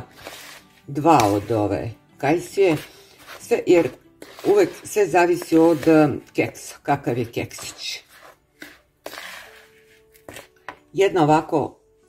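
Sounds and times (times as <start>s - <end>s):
spatula scraping mix in a bowl: 0.0s - 10.8s.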